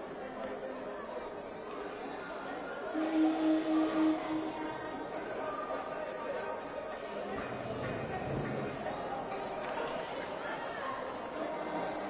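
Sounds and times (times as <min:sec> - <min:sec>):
horn holding a note: 0:02.9 - 0:04.8.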